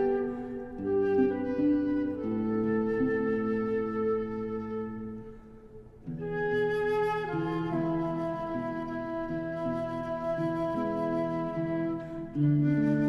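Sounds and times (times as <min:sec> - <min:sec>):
slow woodwind-like instrumental music: 0:00.0 - 0:13.0.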